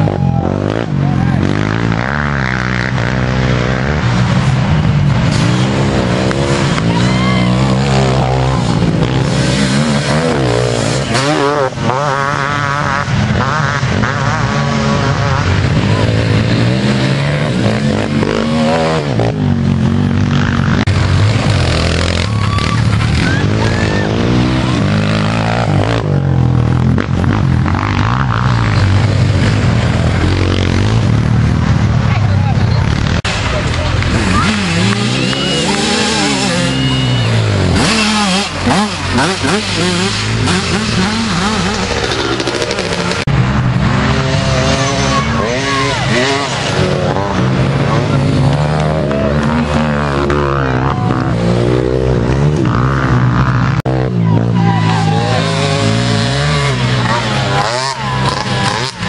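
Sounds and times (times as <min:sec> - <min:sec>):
distant quad engine drone: 0:00.0 - 0:59.0
quad engines revving: 0:00.0 - 0:59.0.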